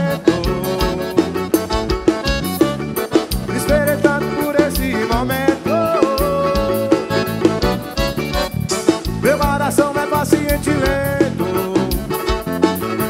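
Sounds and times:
steady drum beat: 0.0s - 12.8s
accordion melody: 0.0s - 13.0s
bass: 0.0s - 13.0s.

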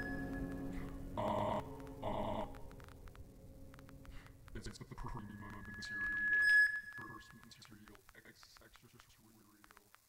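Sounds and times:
faint clicks: 0.0s - 10.0s.

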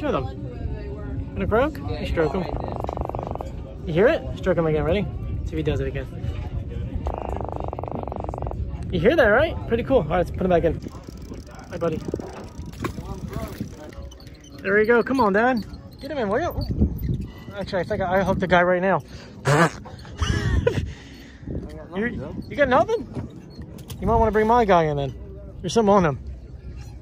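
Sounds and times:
fish croaking buzz: 2.3s - 3.6s, 7.1s - 8.6s.

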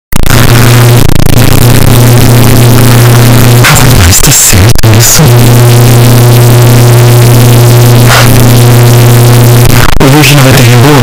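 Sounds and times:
distorted bass drone: 0.0s - 11.0s.

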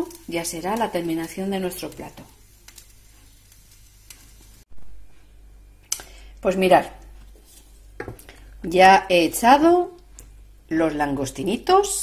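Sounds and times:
sauce bubbling in pan: 0.0s - 4.7s.

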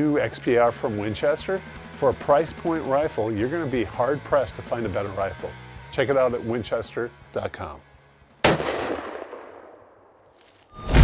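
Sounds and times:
rifle shot with echo: 8.4s - 10.2s.

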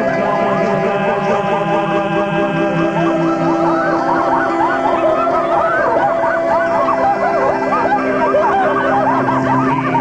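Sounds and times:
song backing held notes: 0.0s - 10.0s
wailing sound effects: 0.0s - 10.0s.

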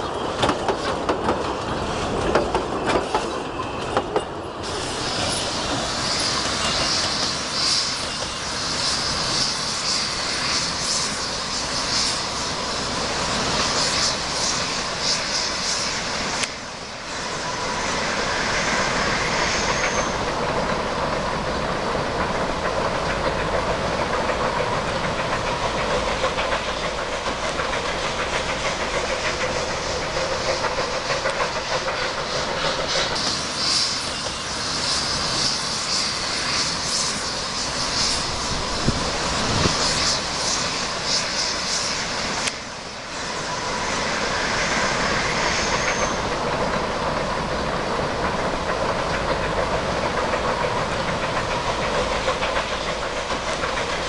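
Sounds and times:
train wheels clicking over rail joints: 0.0s - 54.0s
steam hissing: 4.4s - 54.0s.

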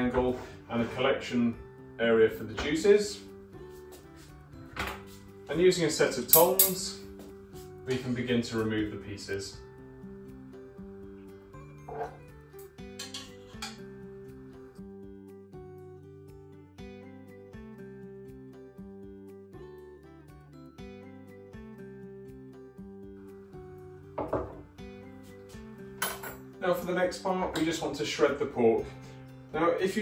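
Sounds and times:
metal tongs clinking: 6.3s - 6.9s, 11.9s - 13.8s, 26.0s - 26.4s.

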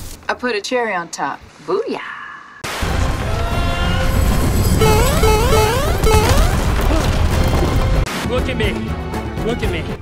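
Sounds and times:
crashing effects: 2.6s - 8.1s
film soundtrack music: 2.7s - 10.0s.

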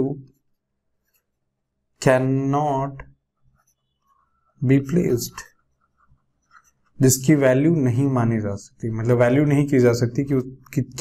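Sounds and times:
stylus scratching on tablet: 3.4s - 7.5s.

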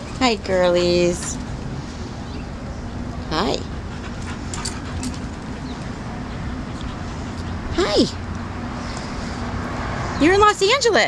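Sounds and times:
steady low rumble: 0.0s - 10.7s
dogs moving about: 3.7s - 6.0s.

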